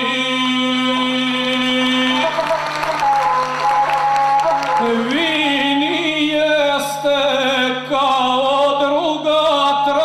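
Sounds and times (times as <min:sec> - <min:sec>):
bowed single-string fiddle: 0:00.8 - 0:07.4.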